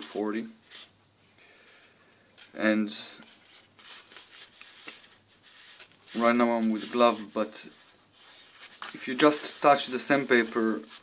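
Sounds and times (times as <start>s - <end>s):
sandpaper rustling: 2.9s - 11.0s.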